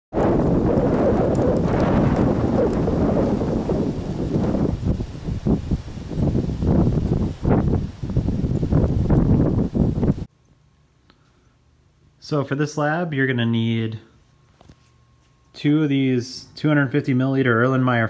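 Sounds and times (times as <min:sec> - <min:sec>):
wind buffeting microphone: 0:00.1 - 0:10.3.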